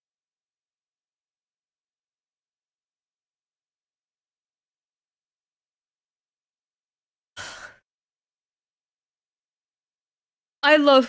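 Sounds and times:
woman sighing: 7.4s - 7.8s.

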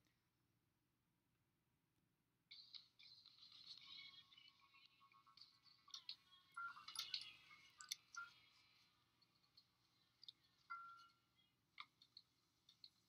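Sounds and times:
quiet film soundtrack: 0.0s - 13.0s
faint clicks: 5.4s - 11.2s.

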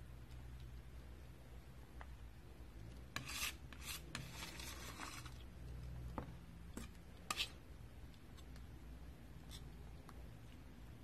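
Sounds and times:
palette knife scraping paint: 2.9s - 5.5s, 6.7s - 7.6s.

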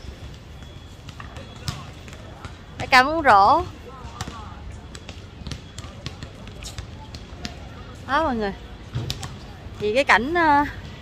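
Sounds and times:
basketballs bouncing on pavement: 0.1s - 11.0s.

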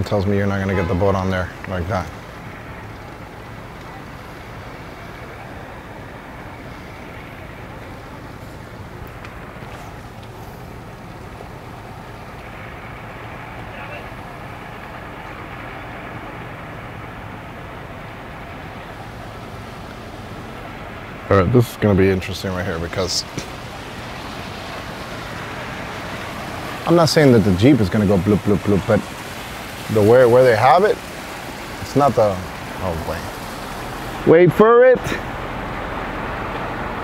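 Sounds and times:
distant voices murmuring: 0.0s - 37.0s
low engine hum: 0.0s - 37.0s.

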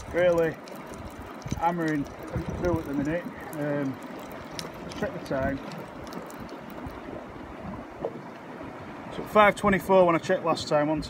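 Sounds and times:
wind on microphone: 0.0s - 9.9s
sea noise: 0.0s - 11.0s
wind: 0.0s - 11.0s.

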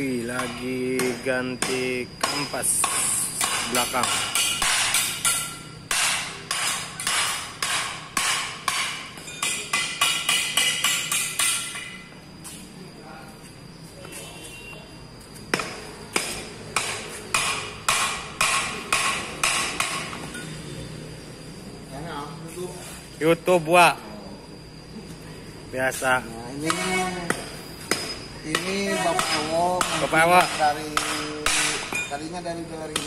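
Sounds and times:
hammer striking metal: 0.2s - 12.2s, 15.5s - 20.5s, 26.6s - 32.2s.

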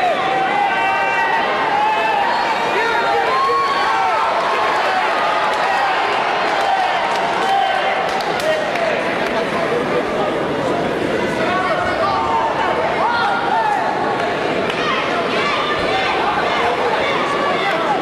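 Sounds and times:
arena crowd cheering and shouting: 0.0s - 18.0s.

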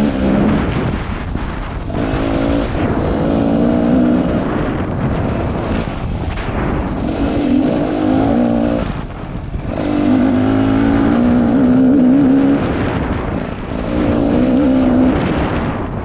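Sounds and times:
dirt bike engine revving: 0.0s - 16.0s.

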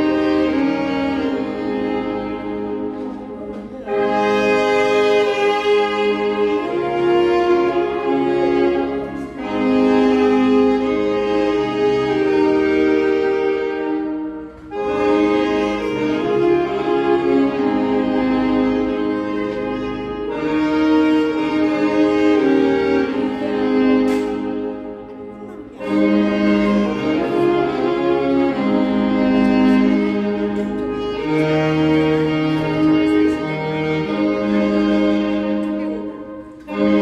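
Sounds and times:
saxophones playing slow melody: 0.0s - 37.0s.

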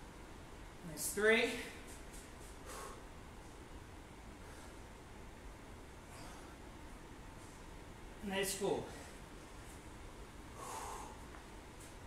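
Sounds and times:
man exhaling forcefully: 10.6s - 11.2s.

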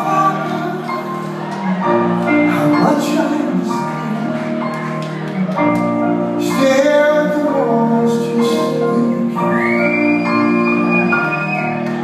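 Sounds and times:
live band playing slow chords: 0.0s - 12.0s.

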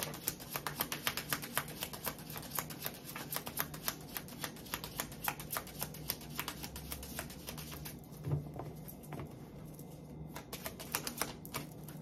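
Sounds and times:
cards being shuffled: 0.0s - 8.0s, 9.7s - 12.0s.

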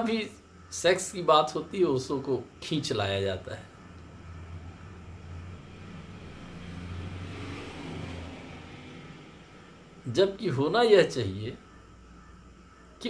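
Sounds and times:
passing vehicle engine hum: 3.4s - 12.9s.

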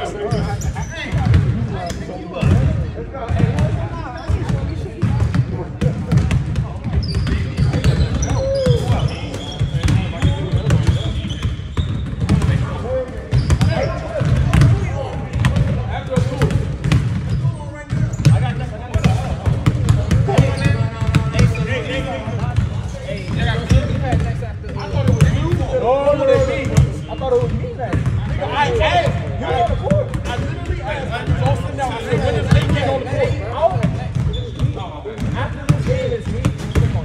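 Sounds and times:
basketballs bouncing on wooden floor: 1.0s - 1.8s, 2.4s - 37.0s
players calling out: 6.6s - 24.1s.

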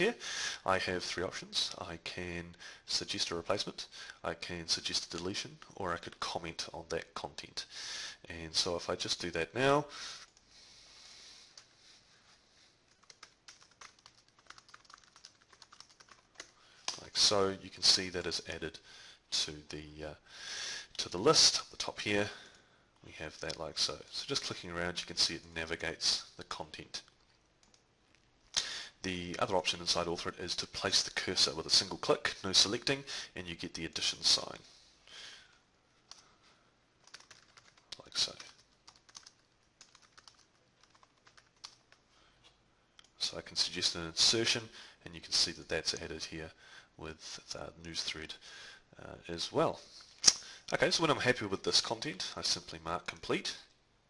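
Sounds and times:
typing on computer keyboard: 12.9s - 17.0s, 37.0s - 42.0s.

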